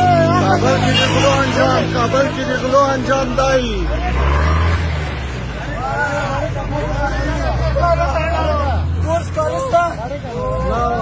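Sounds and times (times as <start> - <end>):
men talking over one another: 0.0 - 11.0
vehicle engine hum: 0.0 - 11.0.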